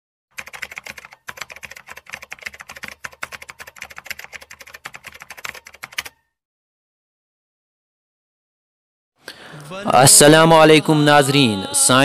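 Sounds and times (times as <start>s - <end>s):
keyboard typing clicks: 0.4s - 6.2s.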